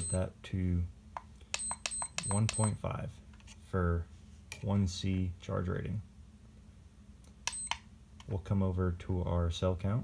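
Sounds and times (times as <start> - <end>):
short high-pitched beep: 0.0 - 0.2.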